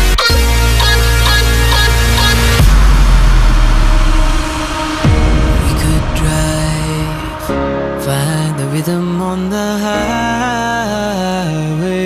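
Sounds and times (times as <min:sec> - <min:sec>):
electronic dance music: 0:00.0 - 0:09.8.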